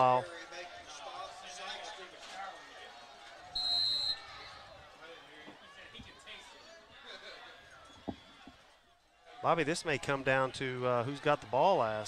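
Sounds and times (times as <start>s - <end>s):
referee's whistle blast: 3.5s - 4.4s.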